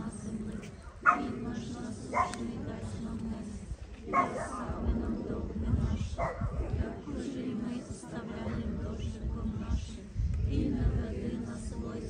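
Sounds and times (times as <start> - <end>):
murmur of voices: 0.0 - 12.0
dog barking: 1.0 - 1.2, 2.1 - 2.4, 4.1 - 4.5, 6.2 - 6.4.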